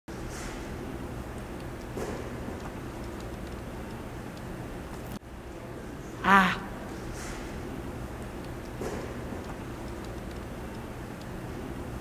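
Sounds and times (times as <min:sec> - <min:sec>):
faint ticks: 0:08.2 - 0:11.4.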